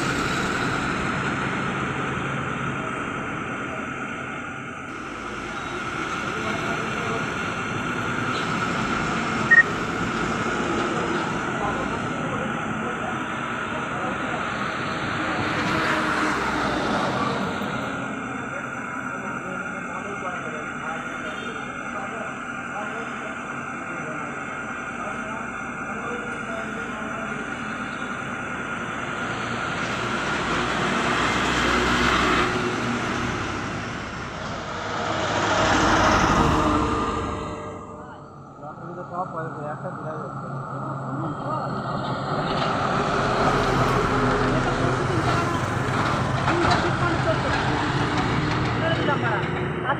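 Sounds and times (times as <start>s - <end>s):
heavy truck traffic on highway: 0.0s - 39.2s, 40.3s - 49.9s
short high beep: 9.5s - 9.8s.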